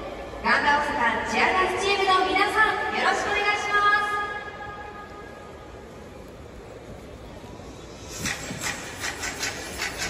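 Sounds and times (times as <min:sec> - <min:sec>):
stadium ambient noise: 0:00.0 - 0:10.0.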